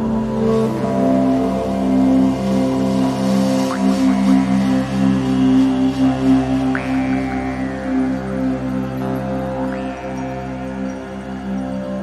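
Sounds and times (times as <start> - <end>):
meditation music drone: 0.0 - 12.0.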